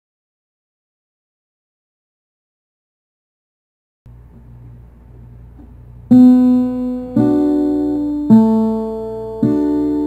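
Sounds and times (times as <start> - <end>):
faint low hum: 4.1 - 10.0
acoustic guitar chord: 5.6 - 10.0.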